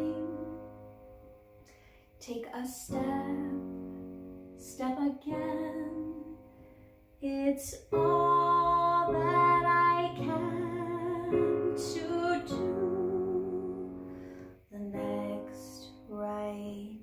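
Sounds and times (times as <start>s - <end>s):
woman singing ballad: 0.0s - 0.8s, 2.2s - 3.9s, 4.6s - 6.5s, 7.2s - 17.0s
digital piano: 0.0s - 1.8s, 2.9s - 17.0s.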